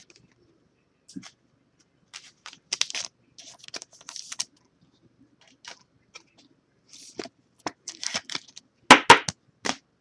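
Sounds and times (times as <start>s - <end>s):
cards and plastic sleeves rustling: 2.1s - 4.7s, 5.4s - 9.8s.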